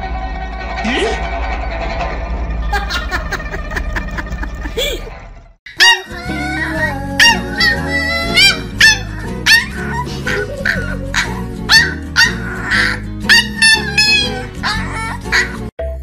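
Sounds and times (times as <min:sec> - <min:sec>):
puppy barking in high yips: 0:05.7 - 0:06.4, 0:07.2 - 0:15.6
background music: 0:05.7 - 0:16.0.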